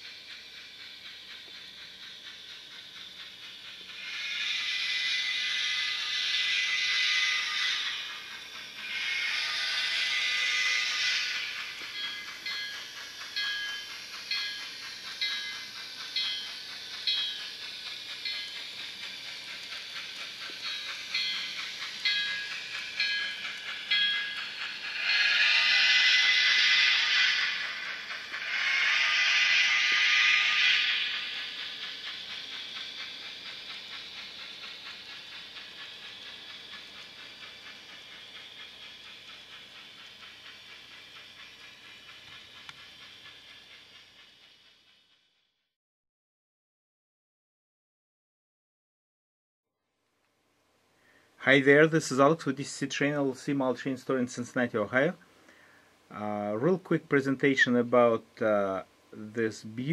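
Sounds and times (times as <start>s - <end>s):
steam locomotive chuffing: 0.0s - 45.6s, 51.0s - 59.9s.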